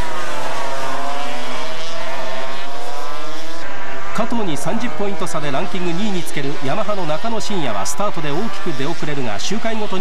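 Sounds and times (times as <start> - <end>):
racing motorcycle engines: 0.0 - 10.0.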